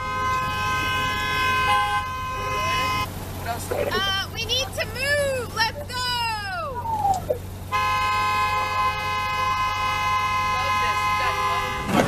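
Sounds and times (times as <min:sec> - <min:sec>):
car horn blast: 0:00.0 - 0:03.1, 0:07.6 - 0:12.0.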